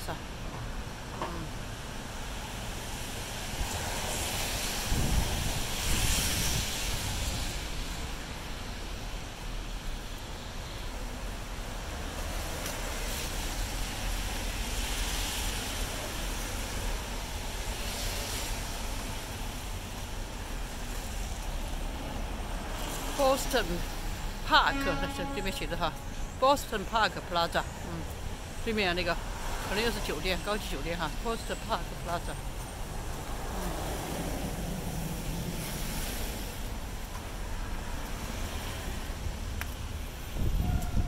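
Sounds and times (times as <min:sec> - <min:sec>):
car tyres hissing on wet road: 0:01.8 - 0:10.5, 0:11.2 - 0:23.2, 0:32.8 - 0:40.5
wind buffeting microphone: 0:04.7 - 0:08.1, 0:40.0 - 0:41.0.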